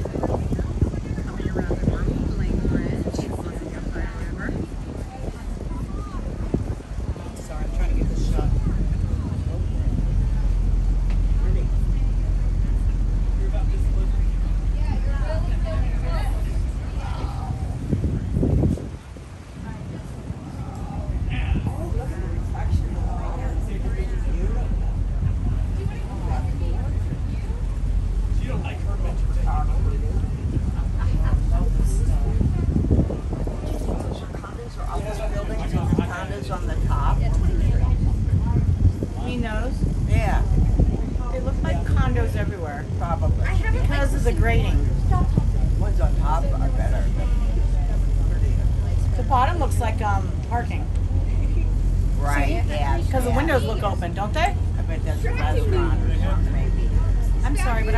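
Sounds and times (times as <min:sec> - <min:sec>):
boat engine droning: 0:00.0 - 0:57.9
faint voices: 0:00.0 - 0:57.9.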